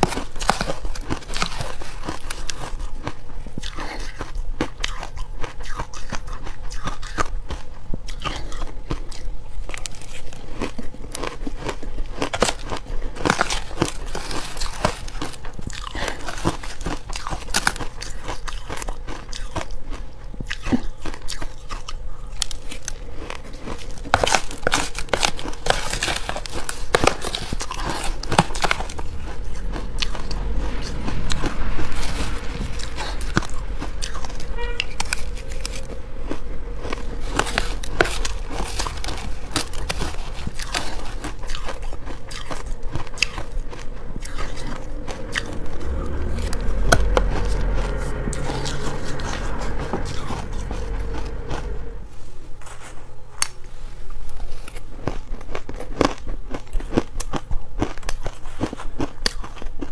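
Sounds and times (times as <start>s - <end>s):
chewing crunchy ice: 0.0s - 46.6s, 54.6s - 59.9s.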